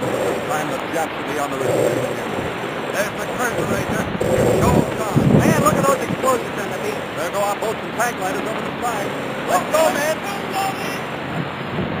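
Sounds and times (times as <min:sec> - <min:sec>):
voice on old recording: 0:00.0 - 0:11.2
steady rushing noise: 0:00.0 - 0:12.0.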